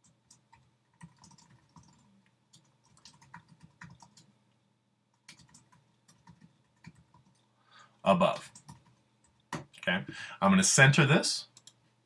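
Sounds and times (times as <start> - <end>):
computer keyboard clicking: 0.0 - 4.3, 5.2 - 7.5, 8.4 - 9.7.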